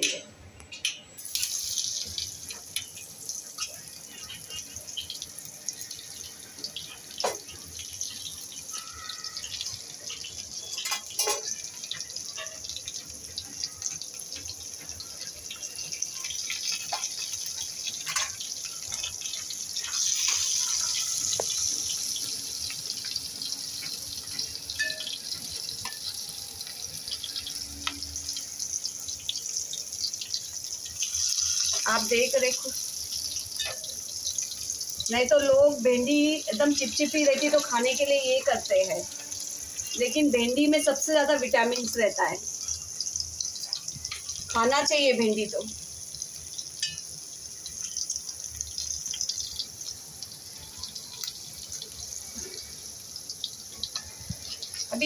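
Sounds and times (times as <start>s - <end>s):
okra sizzling in hot oil: 1.0s - 55.0s.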